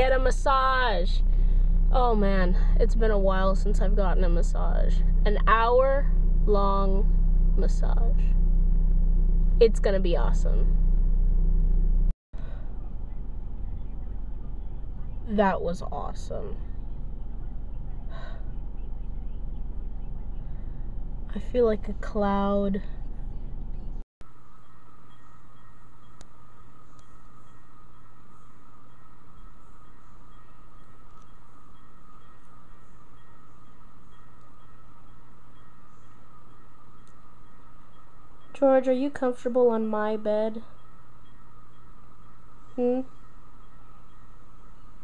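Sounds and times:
car engine rumble from inside: 0.0 - 24.0
low room hum and hiss: 0.0 - 45.0.

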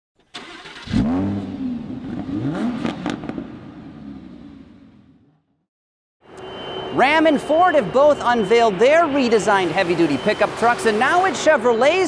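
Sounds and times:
engine revving: 0.4 - 5.3.

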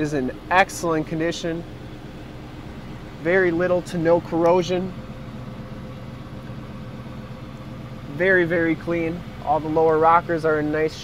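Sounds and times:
faint steady hum: 0.0 - 11.0
vehicle engine idling: 0.0 - 11.0.

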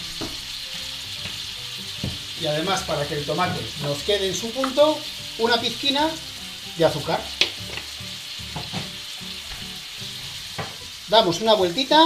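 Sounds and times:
food sizzling in frying pan: 0.0 - 12.0.

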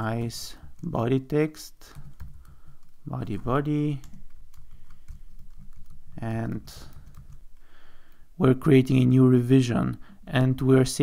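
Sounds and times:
computer keyboard typing: 1.8 - 8.2.

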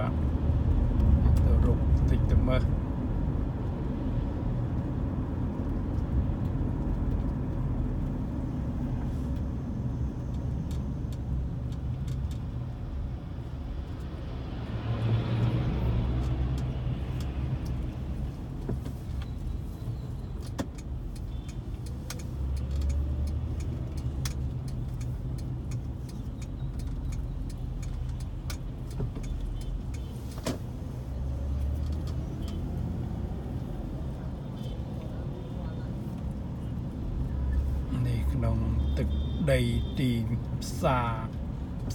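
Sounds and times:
car engine and tyres rumbling: 0.0 - 41.9
passing traffic: 0.0 - 41.9.

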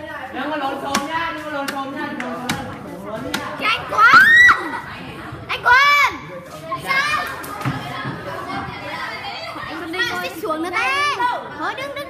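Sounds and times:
children talking and shouting: 0.0 - 12.0.

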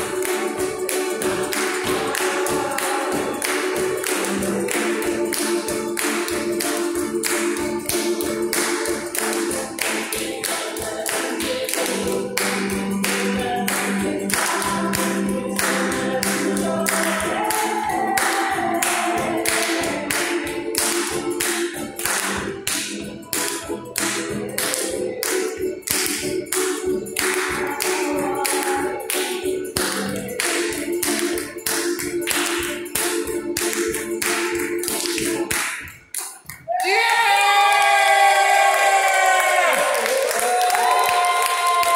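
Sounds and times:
acoustic string band strumming: 0.0 - 36.5.

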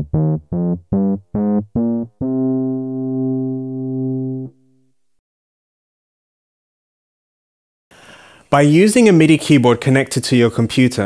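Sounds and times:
synthesizer scale notes: 0.0 - 5.0.

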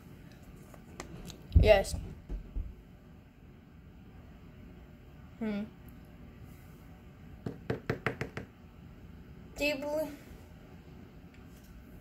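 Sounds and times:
sharp knocks on hard surface: 7.4 - 8.5.

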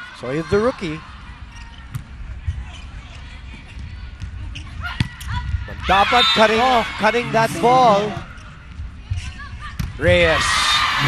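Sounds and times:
faint court noises: 0.0 - 11.0.

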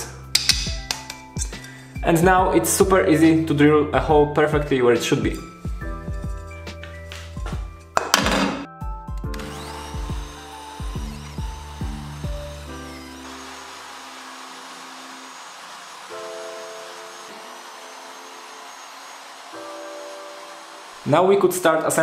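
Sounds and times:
calm background music: 0.0 - 22.0
drill press whirring: 9.2 - 21.1.

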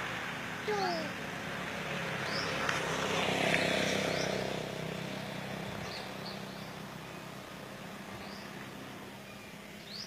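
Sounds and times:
passing vehicle engine: 0.0 - 10.0.

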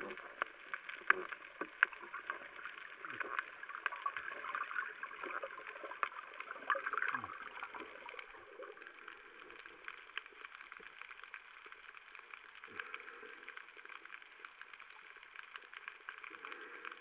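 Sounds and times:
snapping shrimp crackling underwater: 0.0 - 17.0.

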